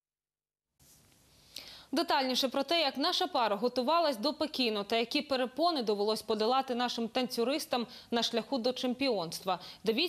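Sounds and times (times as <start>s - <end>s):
intake of breath: 1.3s - 1.9s
woman speaking: 1.9s - 10.0s.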